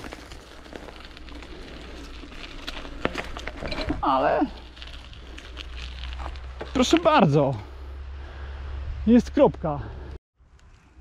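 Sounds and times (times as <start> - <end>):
bicycle tyres crunching on gravel: 0.0 - 8.5.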